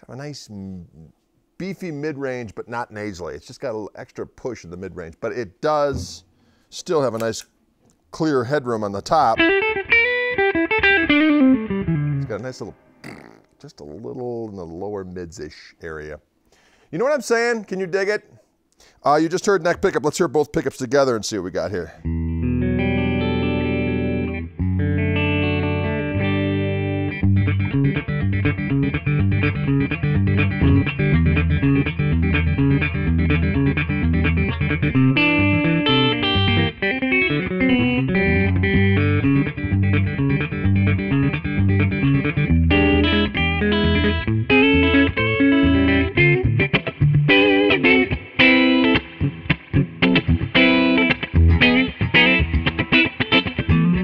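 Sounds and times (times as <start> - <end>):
electric guitar through amplifier: 9.4 - 13.4, 22.0 - 54.0.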